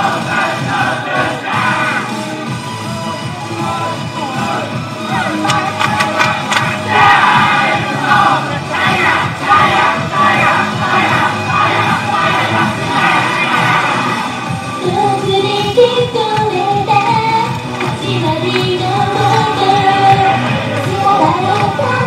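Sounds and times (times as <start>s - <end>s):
upbeat pop dance music: 0.0s - 22.0s
woman singing into a microphone: 14.8s - 22.0s.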